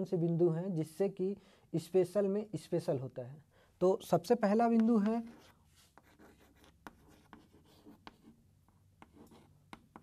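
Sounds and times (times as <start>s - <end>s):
chalk tapping and scratching: 4.5s - 10.0s.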